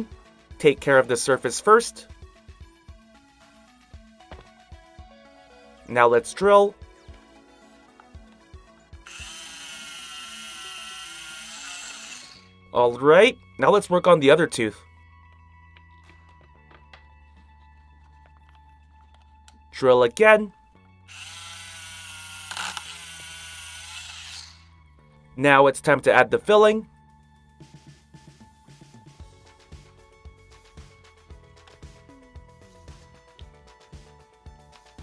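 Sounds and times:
toy drill whirring: 0:09.0 - 0:12.5, 0:21.1 - 0:24.7.

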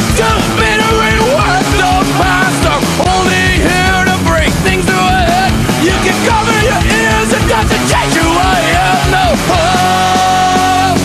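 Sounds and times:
person singing: 0:00.0 - 0:11.0
punk rock band playing: 0:00.0 - 0:11.0.

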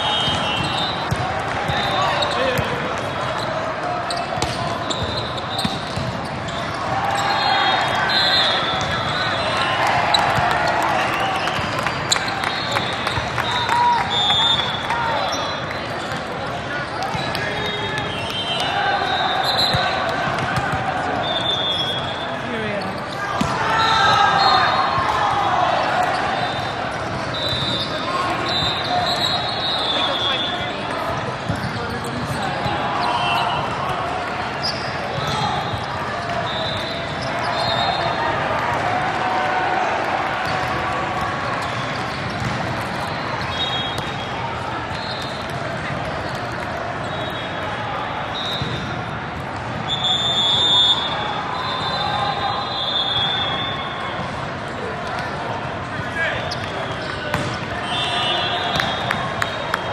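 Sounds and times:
volleyballs hit and bouncing: 0:00.1 - 0:07.3, 0:08.0 - 0:29.0, 0:29.9 - 0:51.1, 0:53.2 - 0:59.9.

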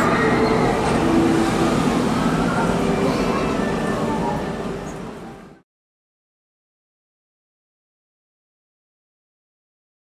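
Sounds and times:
monorail train rumbling: 0:00.0 - 0:05.6.

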